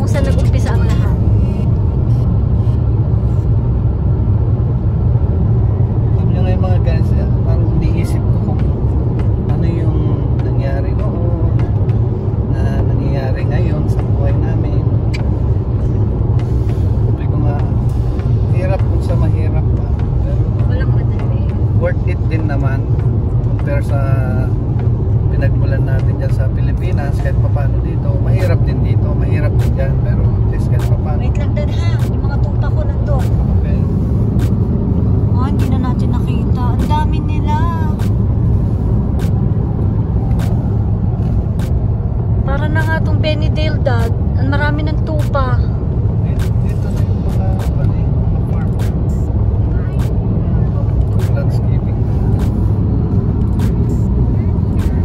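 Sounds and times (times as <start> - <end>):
car road and engine rumble: 0.0 - 55.0
voices in car: 0.0 - 55.0.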